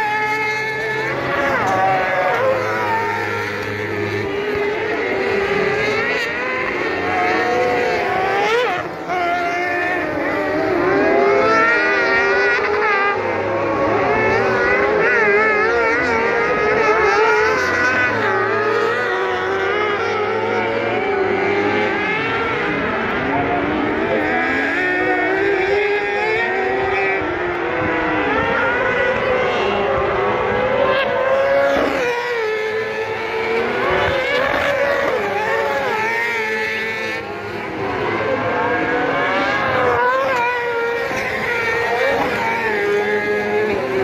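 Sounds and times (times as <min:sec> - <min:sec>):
kart engines revving: 0:00.0 - 0:44.0.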